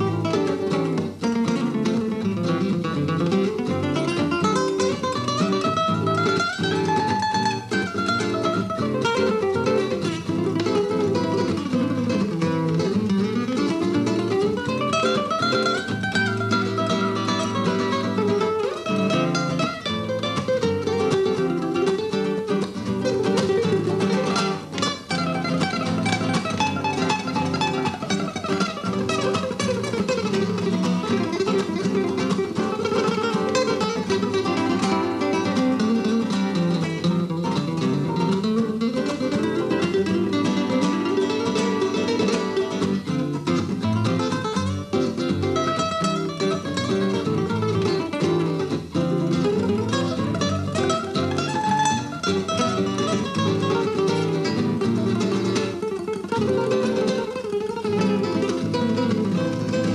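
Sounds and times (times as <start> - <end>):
two guitars playing a duet: 0.0 - 59.9.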